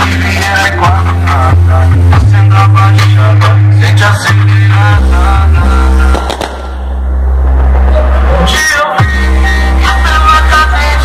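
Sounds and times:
hip hop on car sound system: 0.0 - 11.0
sharp hits: 5.7 - 9.3.

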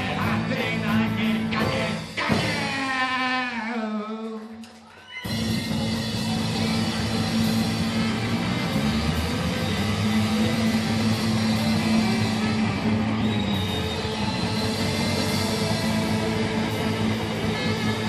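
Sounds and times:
drum kit: 0.0 - 3.4, 5.2 - 18.0
electric guitar: 4.7 - 18.0
saxophone: 5.2 - 18.0.

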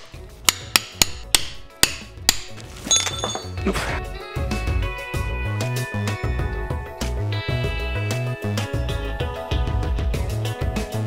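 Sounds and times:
mallet striking chisel into wood: 0.0 - 3.6.

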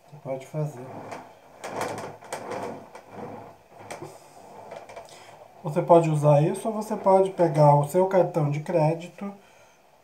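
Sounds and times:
rib scraping clay pot: 0.4 - 7.9.

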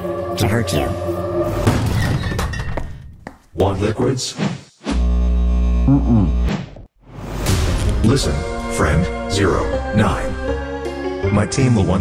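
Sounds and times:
background music: 0.0 - 2.0, 7.2 - 12.0.

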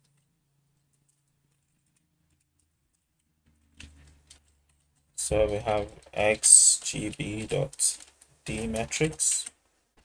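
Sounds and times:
computer keyboard typing: 0.8 - 9.6.

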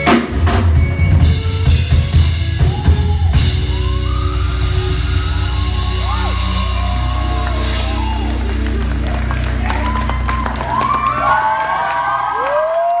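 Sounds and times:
live band holding final chord: 1.6 - 11.7
audience whooping and cheering: 2.5 - 13.0
audience clapping: 6.0 - 13.0.

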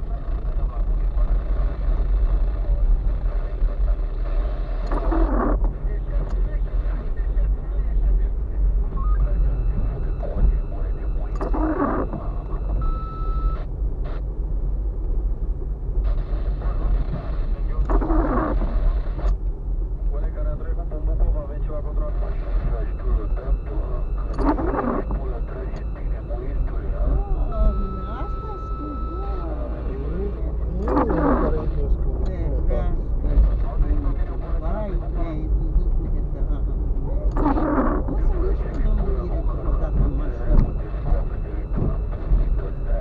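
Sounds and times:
engine and tyres rumbling: 0.0 - 43.0.

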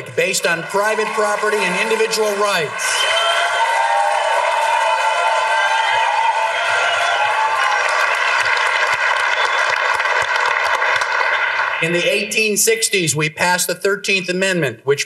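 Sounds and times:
audience applauding: 0.0 - 12.2
crowd cheering: 0.0 - 12.6.

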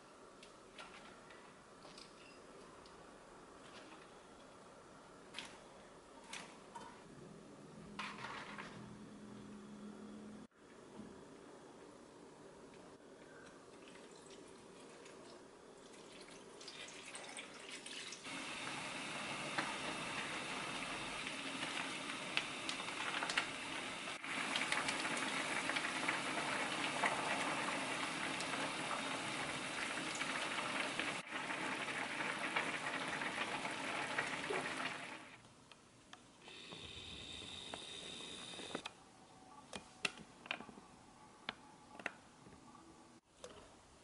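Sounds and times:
broth boiling in a pan: 18.2 - 35.4, 36.5 - 38.8.

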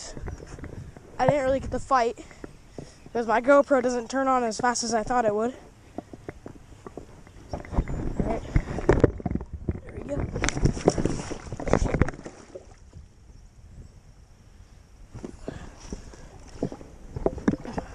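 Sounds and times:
person slipping on rocks: 0.0 - 12.9, 15.1 - 17.9.

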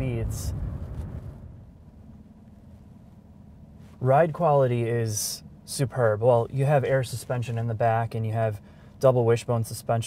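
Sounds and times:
faint car rumble driving: 0.0 - 10.0.

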